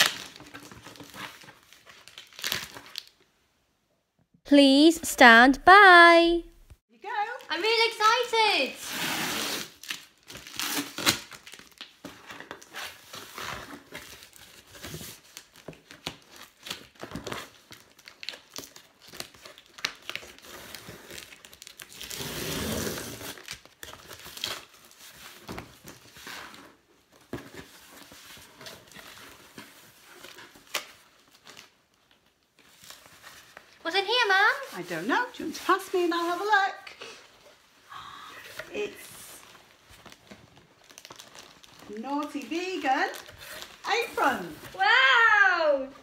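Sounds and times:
tape and paper tearing: 8.8s - 11.7s, 21.8s - 24.7s
cardboard and paper rustling: 38.4s - 45.2s.

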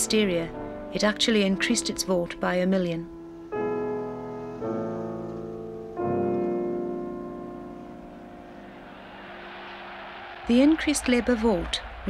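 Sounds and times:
sustained piano chord: 3.1s - 10.3s.

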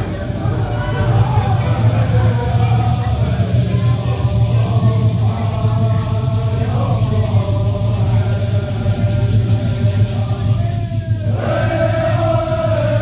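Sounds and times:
chorus chanting in unison: 0.0s - 13.0s.

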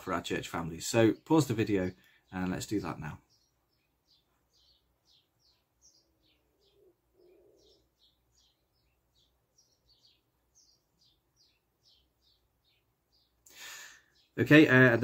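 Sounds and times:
faint bird chirping: 0.1s - 15.0s.

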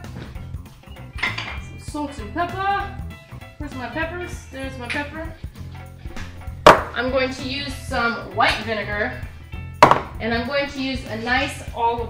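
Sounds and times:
funk music: 0.0s - 12.0s
jars and bottles clinking: 1.1s - 1.7s, 9.8s - 10.2s.

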